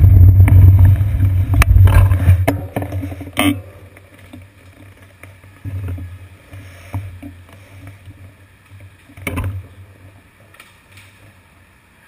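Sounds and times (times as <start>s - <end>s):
steady low rumble: 0.0s - 4.1s.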